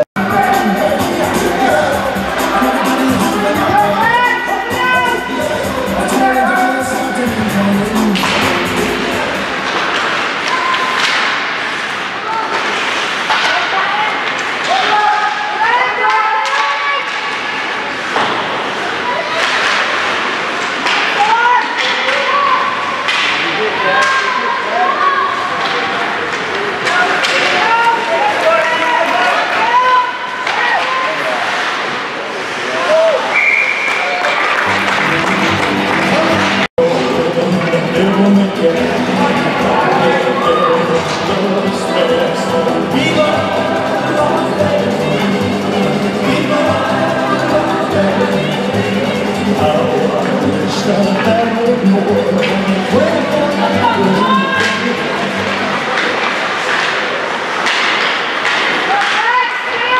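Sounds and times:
hockey sticks knocking puck: 8.0 - 15.4, 16.0 - 18.8, 19.4 - 22.3, 23.0 - 24.3, 25.6 - 29.7, 55.5 - 59.8
voices calling out: 32.6 - 59.9.

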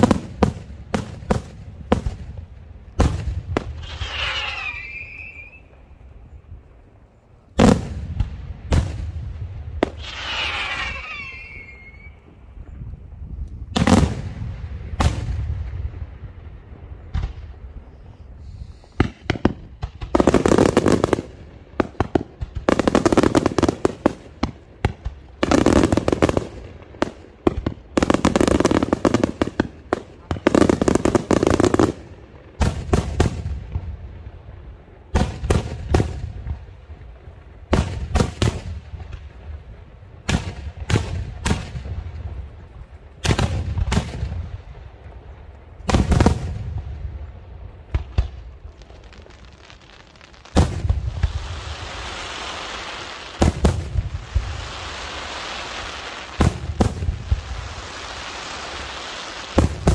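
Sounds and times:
crackling fireworks volleys: 0.0 - 59.9
sharp firework bangs: 13.7 - 15.9, 50.5 - 59.9.

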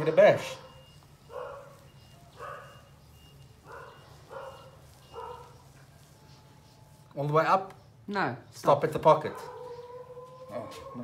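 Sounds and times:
faint dog barking: 0.0 - 7.0, 9.2 - 11.0.

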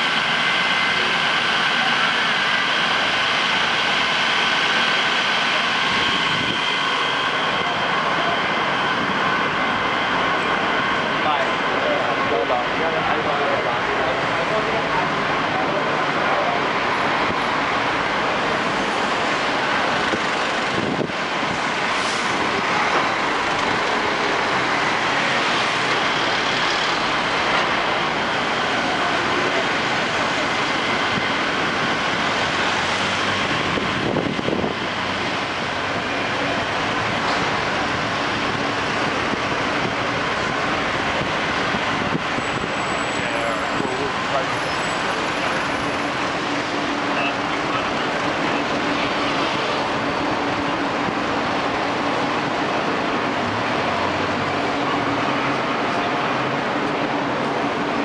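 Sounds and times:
passers-by's voices: 0.0 - 58.0
street traffic: 0.0 - 58.0.

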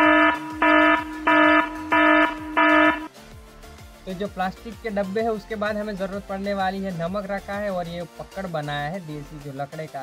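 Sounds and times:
harsh buzzing warning beeps: 0.0 - 3.1.

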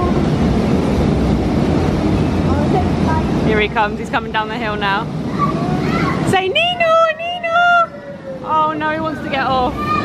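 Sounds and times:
fairground ride cars rumbling: 0.0 - 10.0.

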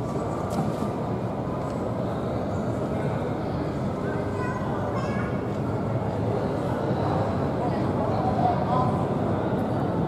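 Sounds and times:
faint people's activity: 0.0 - 10.0.

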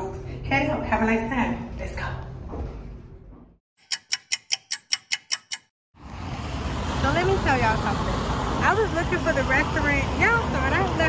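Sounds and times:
sharp ticking sound effect: 3.8 - 5.7
street traffic noise: 6.0 - 11.0.

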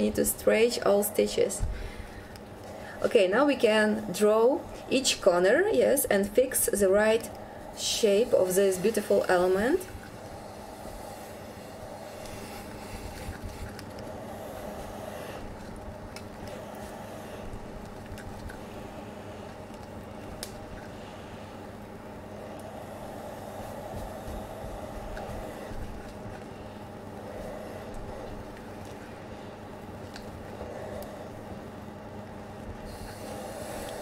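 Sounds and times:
steam iron humming: 0.0 - 34.0
iron rubbing on fabric: 2.8 - 20.2, 20.9 - 29.6.

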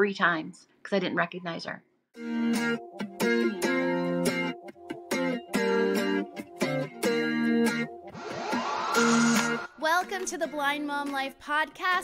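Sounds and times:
music: 2.2 - 12.0
rising whoosh effect: 8.1 - 9.8.

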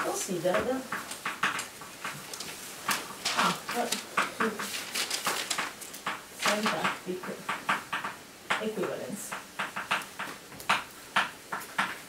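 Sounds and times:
chalk tapping and scratching: 0.0 - 12.0.

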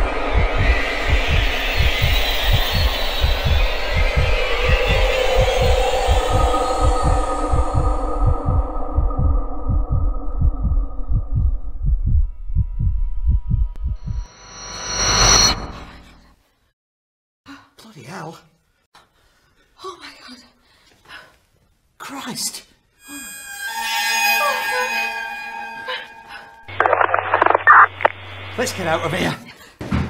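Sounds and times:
sustained drone: 0.0 - 12.5, 14.0 - 16.0, 23.0 - 29.2
low heartbeat-like pulse: 0.0 - 15.6
loud high-pitched hit: 14.0 - 16.0.

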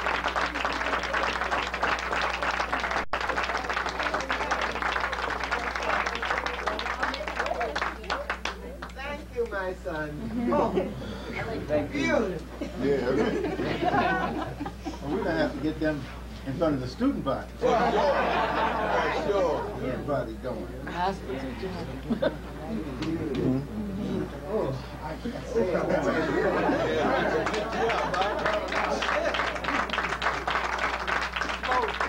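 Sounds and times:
hand claps: 0.0 - 9.6, 27.4 - 32.0
steady low hum: 0.0 - 32.0
people talking indistinctly: 4.2 - 29.6
people laughing: 12.6 - 15.6, 17.6 - 19.8, 21.9 - 22.6, 25.4 - 30.8.

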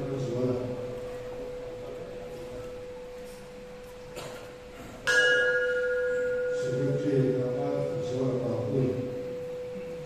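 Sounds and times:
brass bell ringing: 5.1 - 7.0.

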